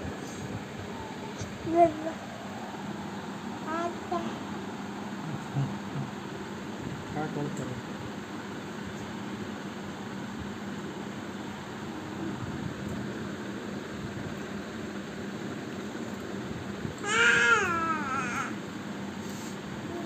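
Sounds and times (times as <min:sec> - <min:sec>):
steady low hum: 0:00.0 - 0:20.0
infant squealing: 0:17.0 - 0:18.5.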